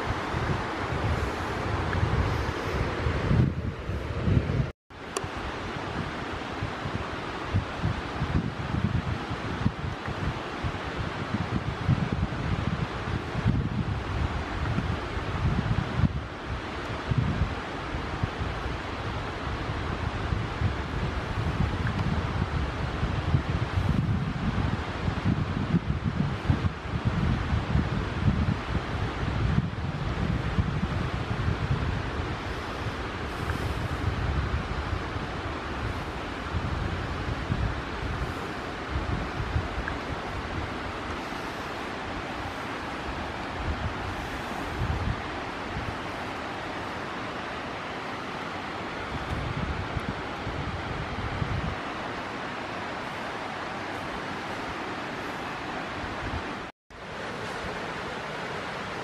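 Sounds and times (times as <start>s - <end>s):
wind buffeting microphone: 0.0s - 59.0s.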